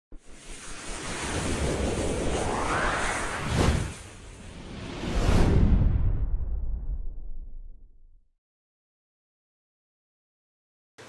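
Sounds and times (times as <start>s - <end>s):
whoosh: 0.1s - 8.2s.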